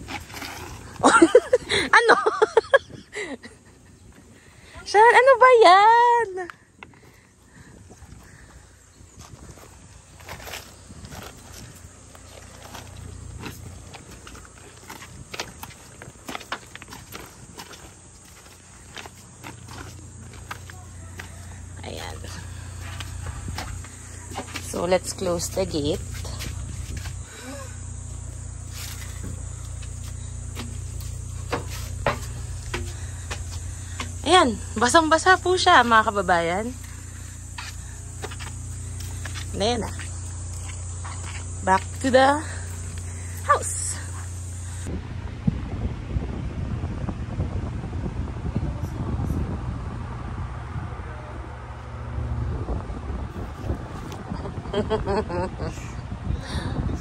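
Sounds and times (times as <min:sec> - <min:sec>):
footsteps crunching on pebbles: 0:00.0 - 0:02.1, 0:07.8 - 0:44.9
low hum: 0:06.5 - 0:57.0.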